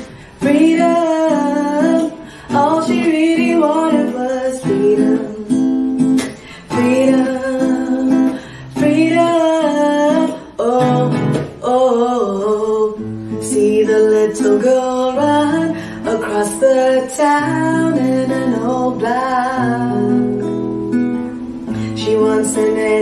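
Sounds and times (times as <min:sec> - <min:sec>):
nylon-string guitar: 0:00.0 - 0:23.0
woman singing: 0:00.0 - 0:23.0.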